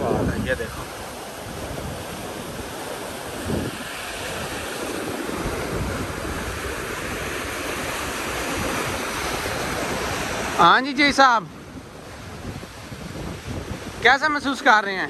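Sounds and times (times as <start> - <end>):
rushing canal water: 0.0 - 15.0
wind on microphone: 0.0 - 15.0.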